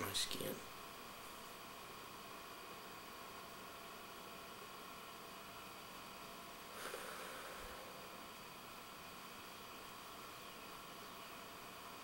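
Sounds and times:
faint hiss and hum: 0:00.0 - 0:12.0.

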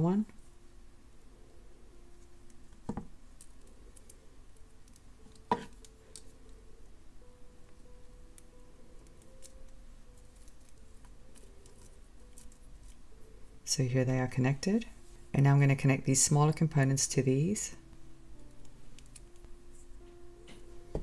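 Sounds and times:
pliers clicking on wire: 0:18.5 - 0:19.4.

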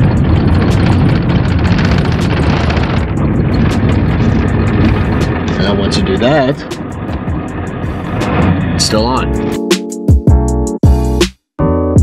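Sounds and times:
light ticks and rattles: 0:00.0 - 0:08.9
vehicle rumbling on dirt road: 0:00.0 - 0:09.7.

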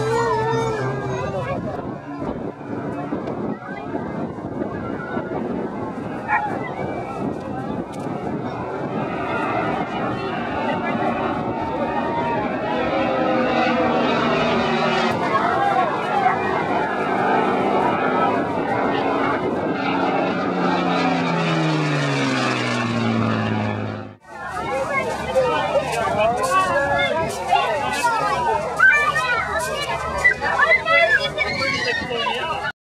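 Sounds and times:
onlookers' voices: 0:00.0 - 0:32.7
propeller plane engine drone: 0:00.0 - 0:32.7.

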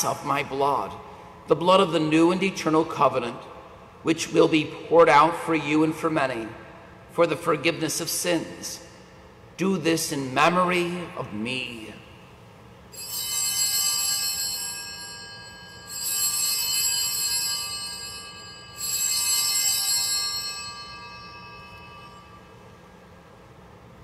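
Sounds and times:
altar bells ringing: 0:12.9 - 0:23.0.

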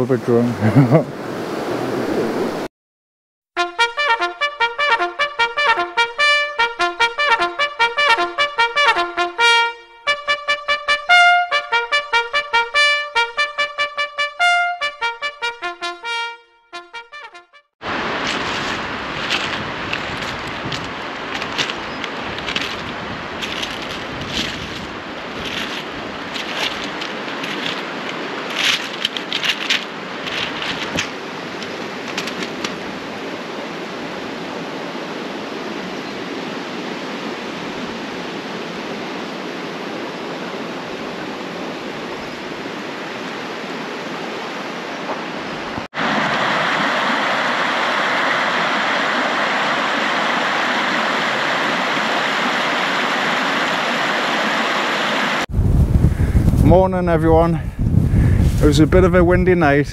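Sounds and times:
stream running over rocks: 0:17.8 - 0:55.5.

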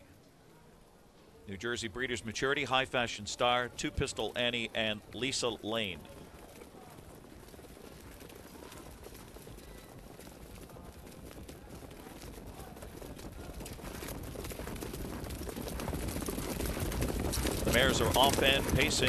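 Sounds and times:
horse hoofbeats on dirt track: 0:02.1 - 0:19.0.

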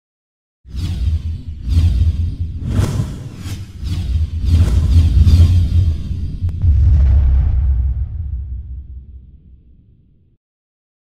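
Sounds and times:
swooshing noise: 0:01.7 - 0:09.3
deep rumbling bass: 0:04.6 - 0:10.0.

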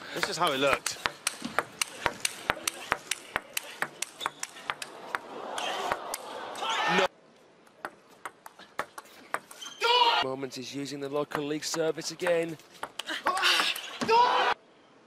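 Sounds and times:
crowd cheering and shouting: 0:04.8 - 0:07.1, 0:13.3 - 0:14.6.

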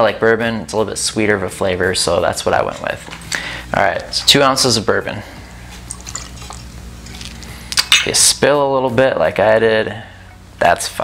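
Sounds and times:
liquid trickling over ice: 0:05.8 - 0:07.5
glass clinks: 0:05.9 - 0:06.7.

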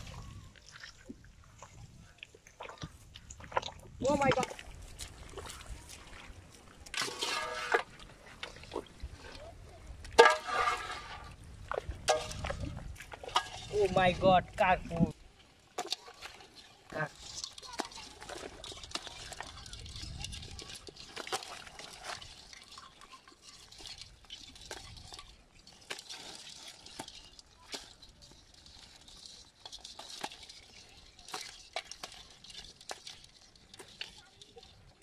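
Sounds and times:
crabs scrabbling in a basin: 0:00.0 - 0:35.0
light water splashing: 0:00.0 - 0:35.0.

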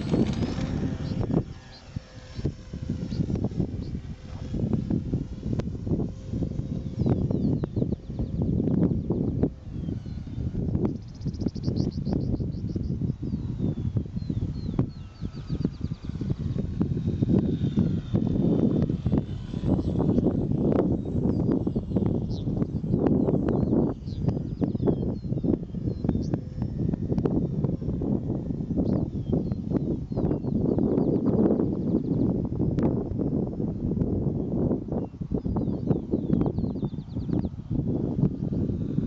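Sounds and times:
model plane motor whine: 0:00.0 - 0:39.0
wind buffeting microphone: 0:00.0 - 0:39.0.

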